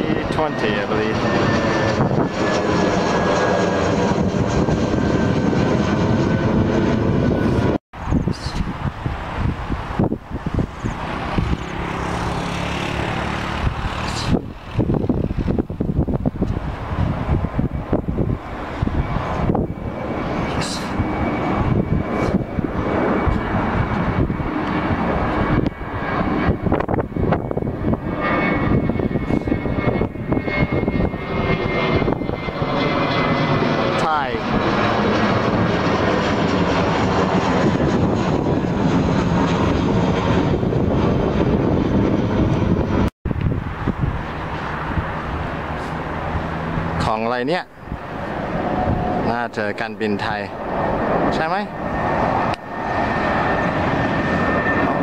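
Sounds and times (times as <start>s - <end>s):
jet engines passing overhead: 0.0s - 55.0s.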